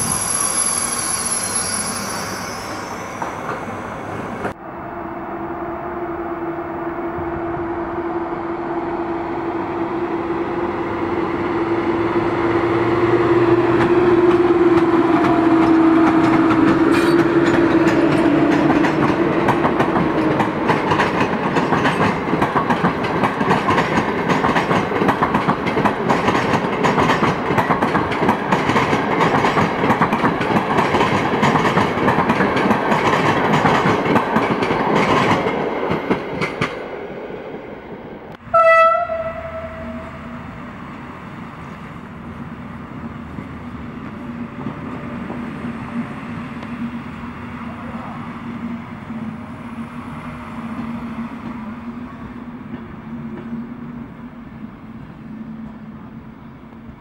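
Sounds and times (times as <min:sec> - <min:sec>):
electric locomotive whine: 0:00.0 - 0:57.0
train wheels clattering on rail joints: 0:13.6 - 0:36.8
train horn blast: 0:38.4 - 0:40.5.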